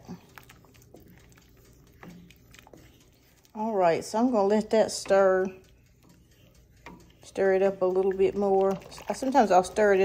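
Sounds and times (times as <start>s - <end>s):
spoon tapping and scraping pot: 0.0s - 10.0s
wooden spoon stirring soup in pot: 0.0s - 10.0s.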